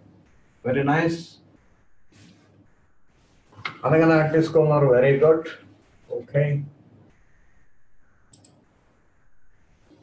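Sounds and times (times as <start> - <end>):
mouse clicks: 8.2 - 8.7.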